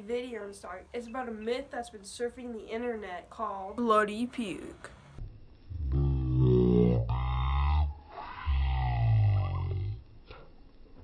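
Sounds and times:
deep bass tones: 0:05.2 - 0:10.2.

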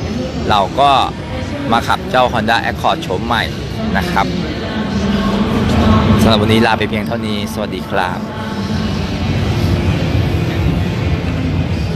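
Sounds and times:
low rumble of a busy hall: 0:00.0 - 0:11.9.

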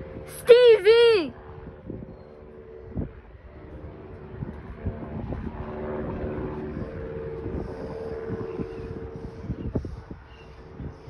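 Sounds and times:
propeller plane engine droning: 0:00.0 - 0:11.0.

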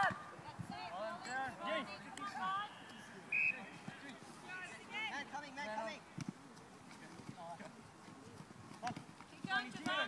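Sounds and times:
open field ambience: 0:00.0 - 0:10.0.

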